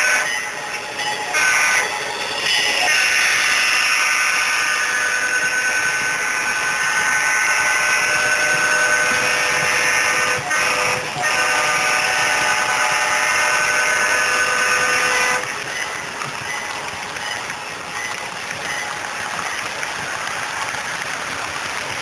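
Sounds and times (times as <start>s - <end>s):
model train whirring past: 0.0s - 22.0s.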